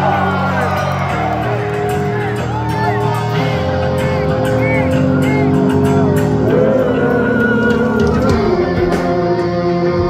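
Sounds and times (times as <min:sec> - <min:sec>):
live rock band over pa: 0:00.0 - 0:10.0.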